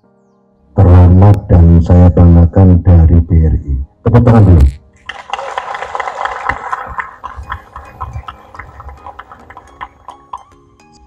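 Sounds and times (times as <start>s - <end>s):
small group clapping: 5.0s - 10.6s.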